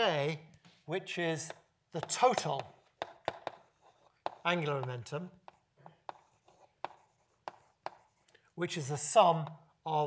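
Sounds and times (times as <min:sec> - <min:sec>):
chalk tapping on blackboard: 0:01.4 - 0:08.4
chalk scratching: 0:01.5 - 0:09.1.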